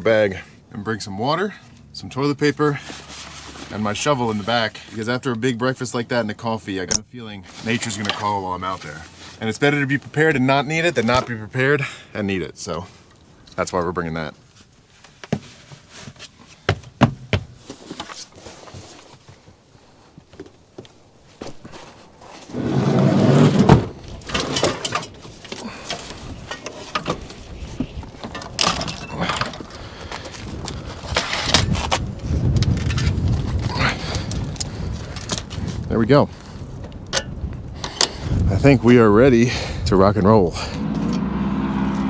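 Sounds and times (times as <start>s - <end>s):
bike and gear clicks and rattles: 23.3s - 38.5s.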